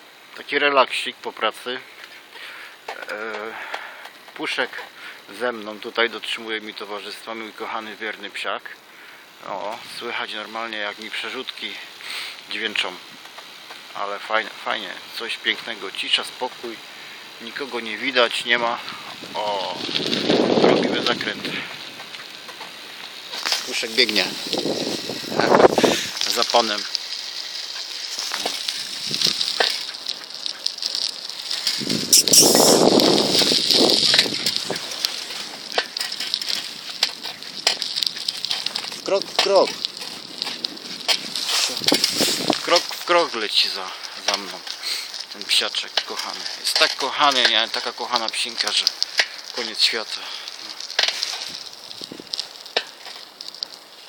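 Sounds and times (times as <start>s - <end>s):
bicycle tyres and drivetrain crackle: 0.0s - 54.0s
small rattles: 18.9s - 54.0s
rushing noise: 31.8s - 35.0s.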